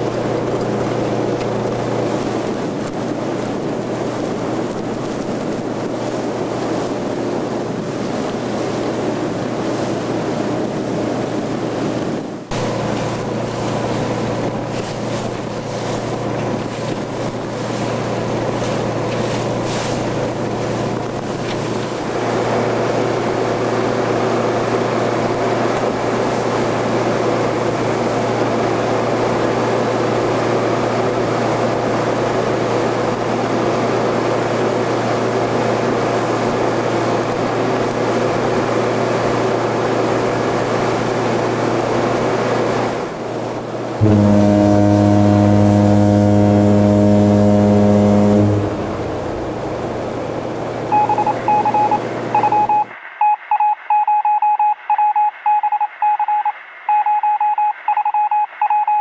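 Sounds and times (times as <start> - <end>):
boat engine running: 0.0 - 52.8
water rushing: 0.0 - 53.0
loud long horn blast: 44.0 - 50.9
rapid electronic beeping: 50.9 - 59.0.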